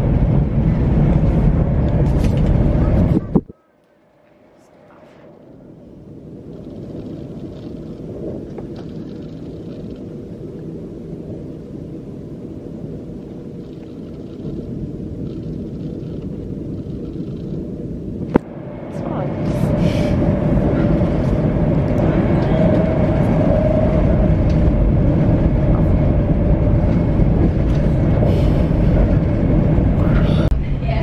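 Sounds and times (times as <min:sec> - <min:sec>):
train rumble inside carriage: 0:00.0 - 0:03.5, 0:04.3 - 0:31.0.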